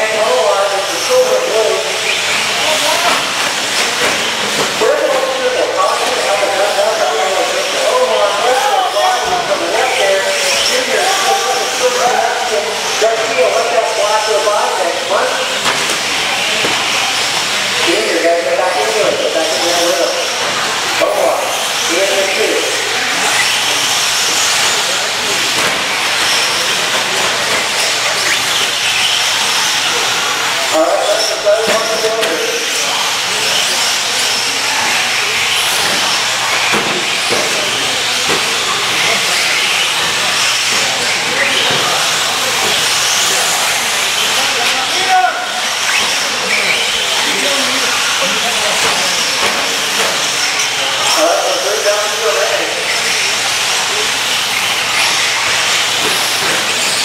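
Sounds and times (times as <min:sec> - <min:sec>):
rc trucks hissing and whining: 0:00.0 - 0:57.0.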